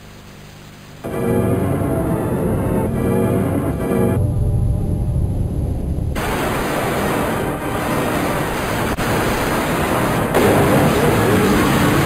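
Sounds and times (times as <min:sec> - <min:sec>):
tv static hiss: 0:00.0 - 0:04.0, 0:06.2 - 0:12.0.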